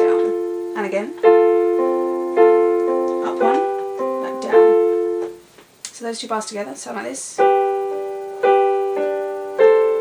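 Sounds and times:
piano chords: 0:00.0 - 0:05.5, 0:07.3 - 0:10.0.

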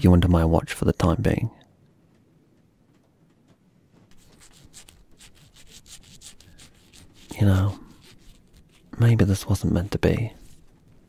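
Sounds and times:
knife sawing through rope: 0:04.1 - 0:10.8.

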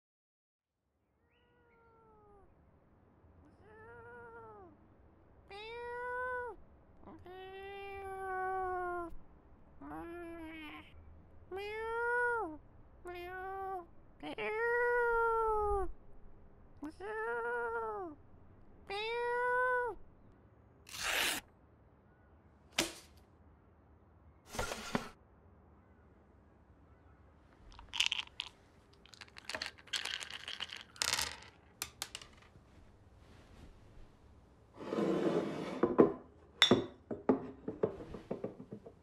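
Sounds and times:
cat meowing: 0:01.2 - 0:02.5, 0:03.4 - 0:04.8, 0:05.5 - 0:09.2, 0:09.8 - 0:15.9, 0:16.8 - 0:18.2, 0:18.8 - 0:20.0.

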